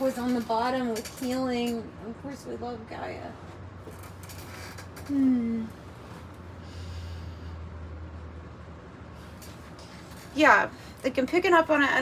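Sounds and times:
steady low hum: 0.0s - 12.0s
soft airy breath: 5.9s - 7.8s.

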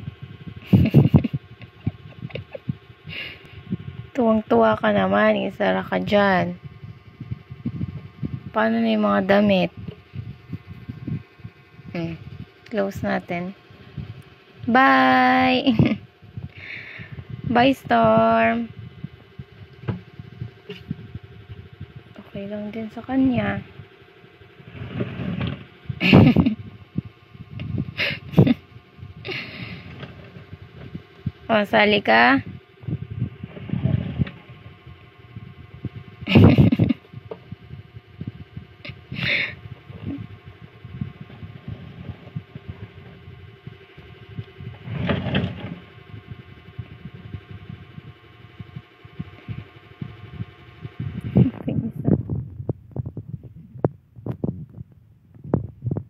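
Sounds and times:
faint steady hum: 0.0s - 56.0s.

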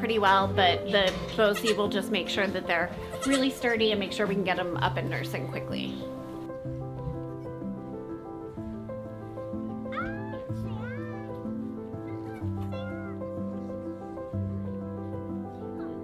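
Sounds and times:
goat kids bleating: 1.4s - 1.9s, 3.0s - 3.5s, 12.1s - 13.2s
slow chord music: 2.4s - 16.0s.

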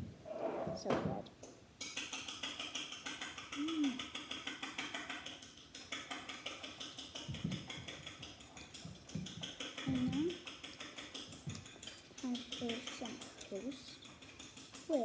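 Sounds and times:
fast high ticking: 1.8s - 15.0s.

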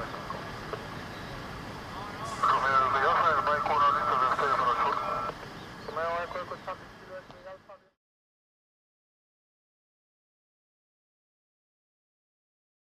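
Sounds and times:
muffled radio voice transmission: 1.9s - 8.0s.

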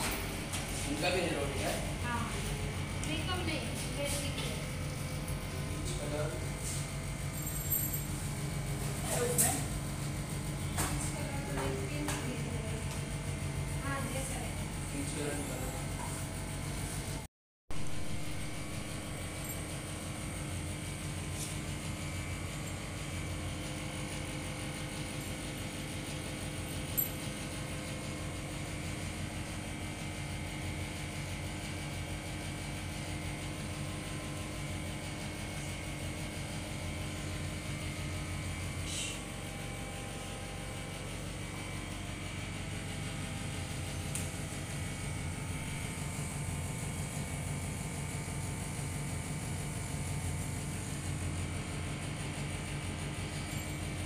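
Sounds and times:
steady mechanical hum: 0.0s - 54.0s.

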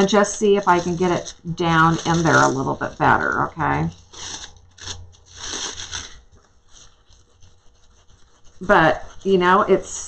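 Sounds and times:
foil sheet crinkling and rustling: 0.0s - 9.7s.

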